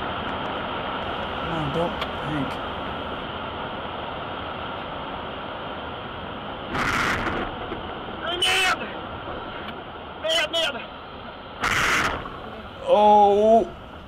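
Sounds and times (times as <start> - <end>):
rush of airflow: 0.0 - 8.2
loud noise bursts: 6.5 - 14.0.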